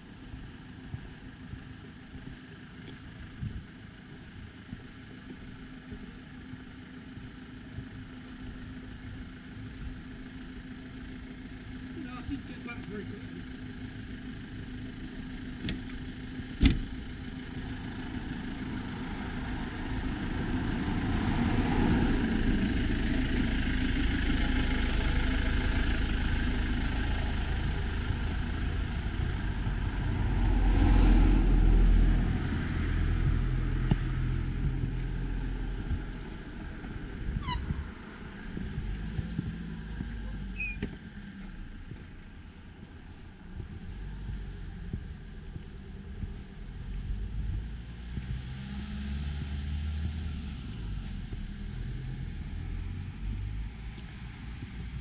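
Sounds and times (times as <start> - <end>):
car engine and tyre noise: 0.0 - 55.0.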